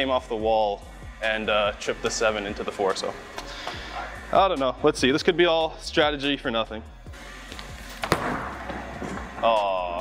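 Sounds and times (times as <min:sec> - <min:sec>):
bowling ball rolling rumble: 0:07.9 - 0:09.7
bowling ball thud: 0:08.0 - 0:09.4.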